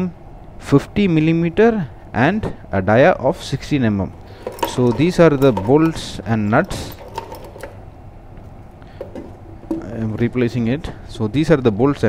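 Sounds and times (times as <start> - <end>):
low background hum: 0.0 - 12.0
metal bolts clinking: 4.2 - 7.9, 8.9 - 10.0.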